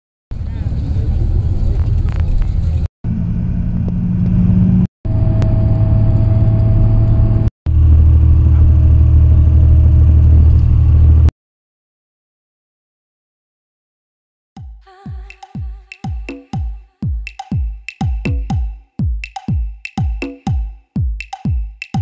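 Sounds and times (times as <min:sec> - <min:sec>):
vehicle rumble from inside: 0:00.4 - 0:11.3.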